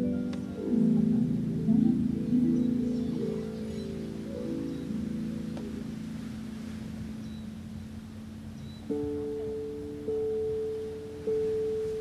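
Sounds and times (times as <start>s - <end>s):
plucked string notes ringing: 0.0s - 12.0s.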